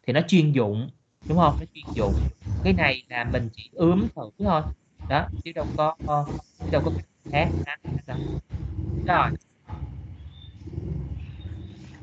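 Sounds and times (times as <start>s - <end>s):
man speaking over video call: 0.0s - 8.2s, 9.1s - 9.4s.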